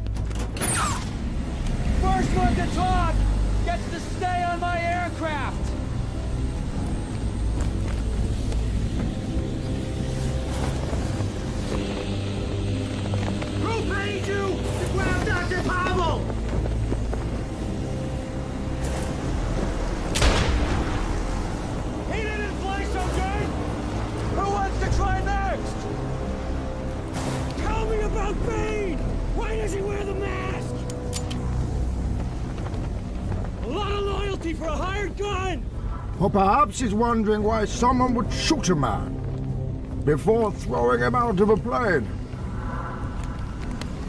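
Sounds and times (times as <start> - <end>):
low aircraft engine drone: 0.0 - 44.0
wind rushing: 41.9 - 44.0.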